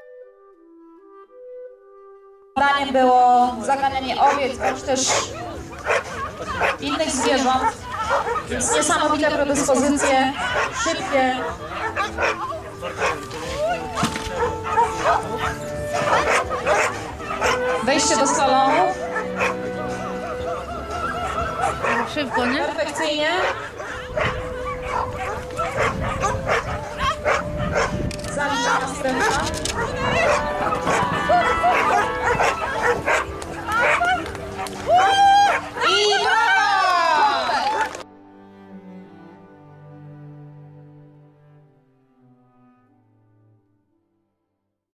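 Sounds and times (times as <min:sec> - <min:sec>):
background music: 0:00.0 - 0:44.4
dog barking: 0:04.2 - 0:09.0, 0:09.8 - 0:13.2, 0:13.9 - 0:28.0, 0:28.6 - 0:34.7.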